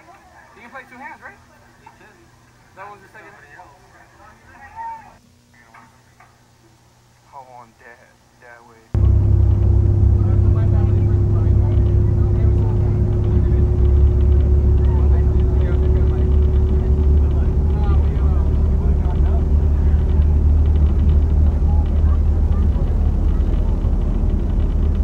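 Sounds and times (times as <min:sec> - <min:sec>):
constant hum: 0:00.0 - 0:25.0
faint indistinct voices: 0:00.0 - 0:25.0
car driving rumble: 0:09.0 - 0:25.0.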